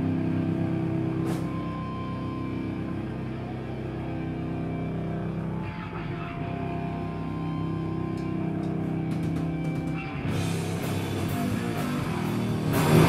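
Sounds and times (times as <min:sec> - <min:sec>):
fuzzed guitar and bass drone: 0:00.0 - 0:13.0.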